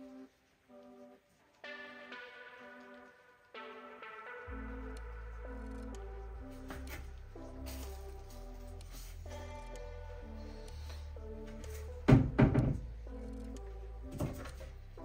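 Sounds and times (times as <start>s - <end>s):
soft background music: 0.0s - 15.0s.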